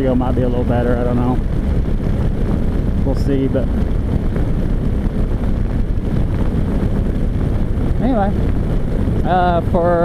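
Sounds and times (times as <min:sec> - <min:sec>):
motorcycle engine and road noise: 0:00.0 - 0:10.0
wind rush on microphone: 0:00.0 - 0:10.0.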